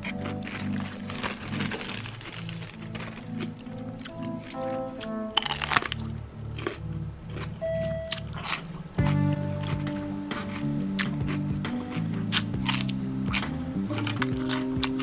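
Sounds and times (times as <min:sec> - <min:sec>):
background music with repeating chords: 0:00.0 - 0:15.0
chewing: 0:00.0 - 0:15.0
crisp crunch of biting pepper: 0:00.0 - 0:15.0.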